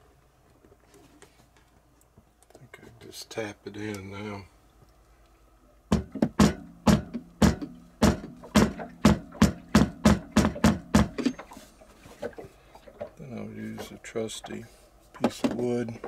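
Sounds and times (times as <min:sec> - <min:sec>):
hammer knocking on wood: 0:05.9 - 0:11.2.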